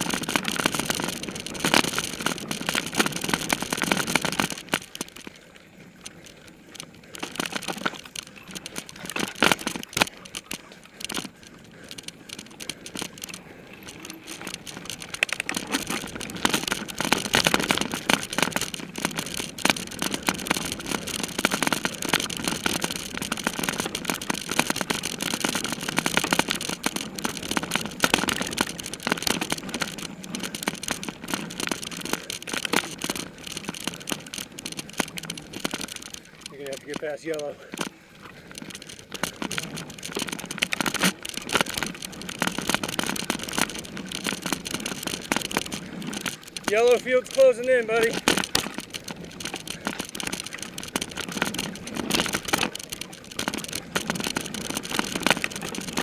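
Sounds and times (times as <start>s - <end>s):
mountain bike rattling: 0.0s - 56.0s
tyre noise on dirt: 0.0s - 56.0s.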